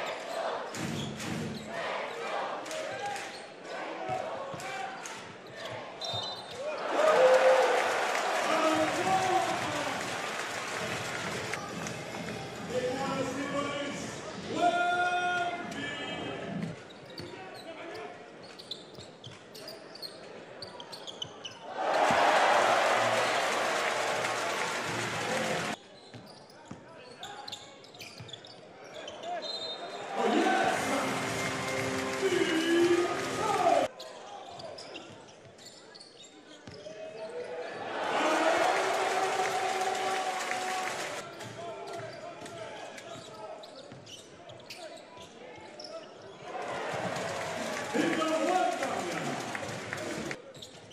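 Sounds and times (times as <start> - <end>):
sneakers squeaking: 0.2 - 1.8, 5.0 - 6.8, 16.5 - 22.2, 25.8 - 30.1, 34.0 - 37.6, 41.4 - 47.2, 50.4 - 50.9
crowd cheering: 6.6 - 11.7, 21.7 - 25.8, 30.0 - 33.9, 37.7 - 41.2, 46.4 - 50.4.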